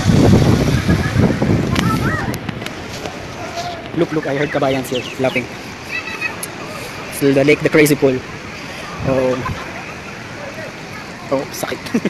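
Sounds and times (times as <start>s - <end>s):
wind rumbling on microphone: 0.0s - 11.2s
faint distant voices: 0.7s - 12.0s.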